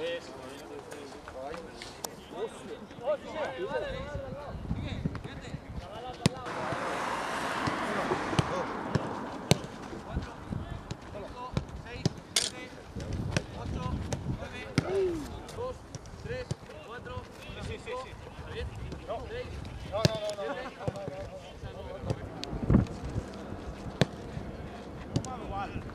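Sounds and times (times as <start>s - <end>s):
footballs kicked on grass: 8.4s - 12.3s.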